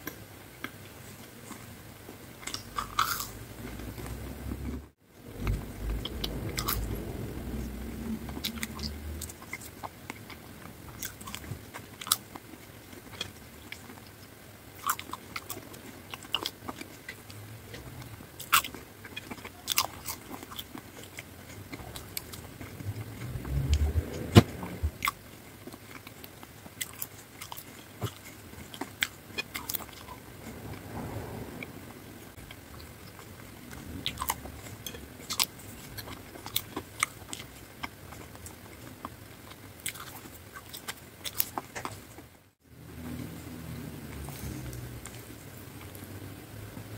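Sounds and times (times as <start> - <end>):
wet chewing of fries: 2.3 - 4.7, 5.4 - 30.6, 32.4 - 42.4.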